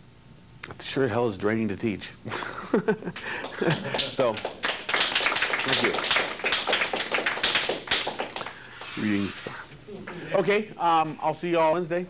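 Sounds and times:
audience applauding: 3.2 - 9.0.

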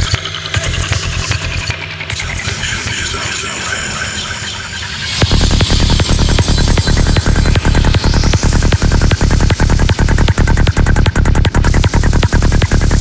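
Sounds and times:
pounding kick drum and bass: 0.0 - 2.8, 5.1 - 13.0
noisy synth textures: 0.0 - 13.0.

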